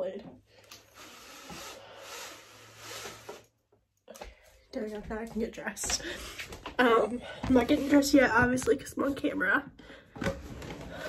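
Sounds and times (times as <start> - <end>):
window blind cord rasping: 0.7 - 3.6.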